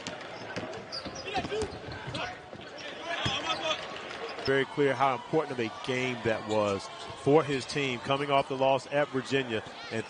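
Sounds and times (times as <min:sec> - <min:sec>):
arena crowd noise: 0:00.0 - 0:10.0
shoe squeaks and clicks: 0:00.2 - 0:04.6.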